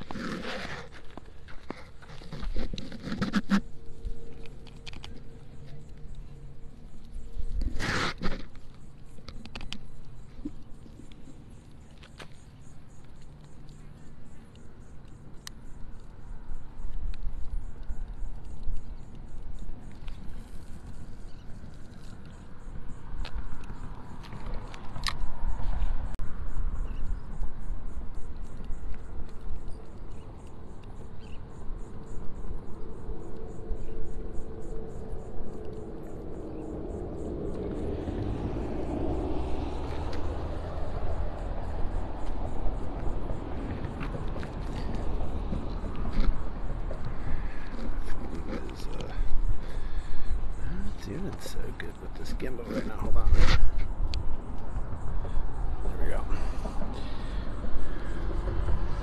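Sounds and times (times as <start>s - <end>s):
wind rumble on microphone: 13.7s - 59.0s.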